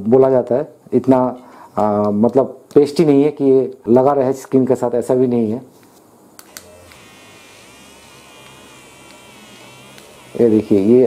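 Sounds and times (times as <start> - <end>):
massager vibration motor buzzing: 6.5 - 11.0.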